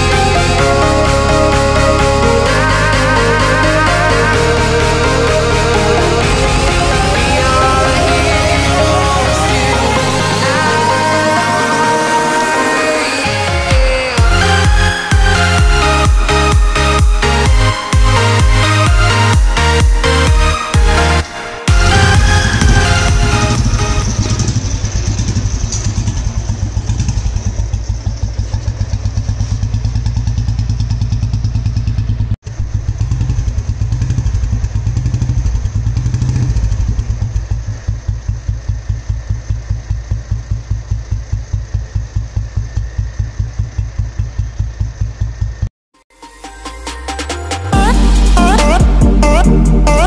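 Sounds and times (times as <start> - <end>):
single-cylinder motorcycle engine running: 21.8 - 45.7.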